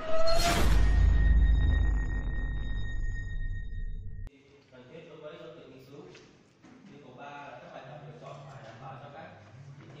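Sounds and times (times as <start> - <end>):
high ringing tone: 0.0 - 4.3.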